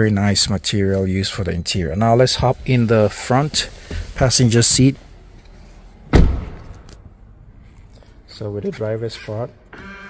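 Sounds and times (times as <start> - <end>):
car door slam: 6.1 - 6.9.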